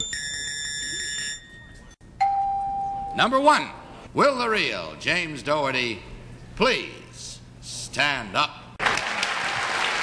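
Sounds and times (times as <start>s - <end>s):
electronic buzzer high tone: 0.0s - 3.0s.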